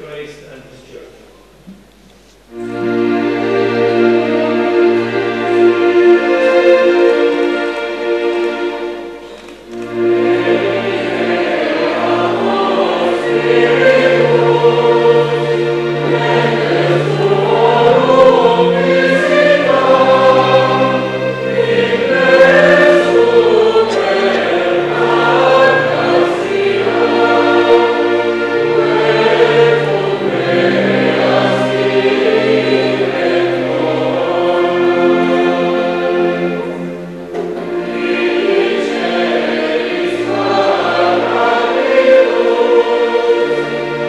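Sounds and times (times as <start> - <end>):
choir singing a slow hymn: 2.5 - 44.0.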